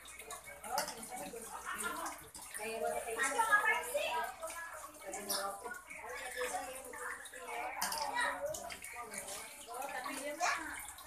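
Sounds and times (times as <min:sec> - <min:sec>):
faint background speech: 0:00.0 - 0:11.0.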